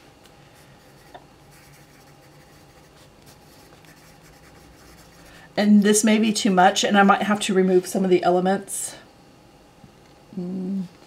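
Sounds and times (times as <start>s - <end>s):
pencil scratching on paper: 0.8s - 5.3s.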